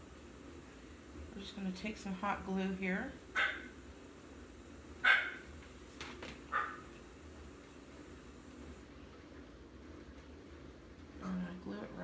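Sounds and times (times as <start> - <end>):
dog barking: 3.4 - 3.8, 5.0 - 5.5, 6.5 - 6.9.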